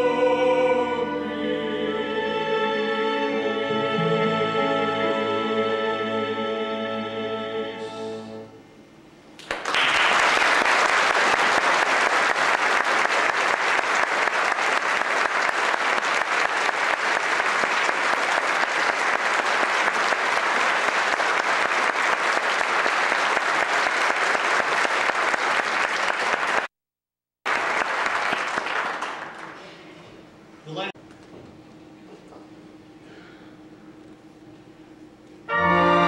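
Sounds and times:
audience applauding: 9.4s - 26.7s, 27.4s - 29.9s.

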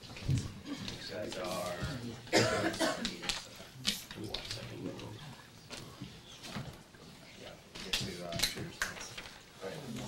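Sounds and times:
person coughing: 2.3s - 3.1s.

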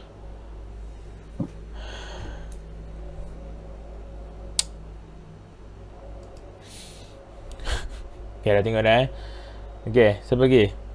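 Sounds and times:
steady low hum: 0.0s - 10.9s
sharp click: 4.6s - 4.8s.

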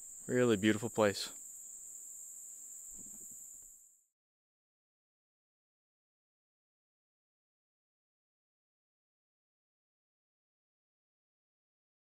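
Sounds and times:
insects chirring: 0.0s - 4.1s.

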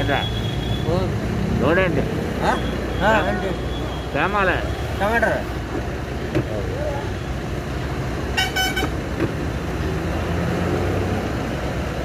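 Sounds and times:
car and road noise: 0.0s - 12.0s
vehicle horn: 8.4s - 9.0s.

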